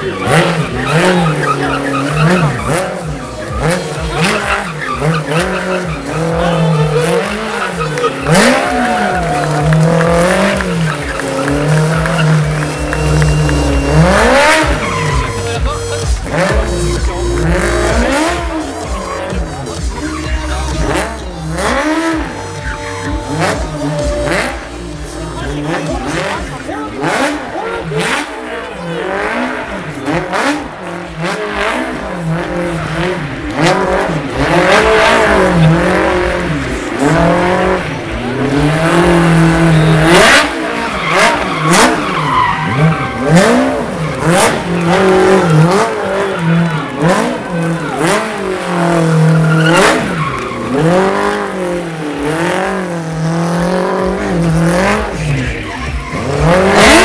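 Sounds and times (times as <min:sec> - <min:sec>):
small car engine revving: 0:00.0 - 0:57.0.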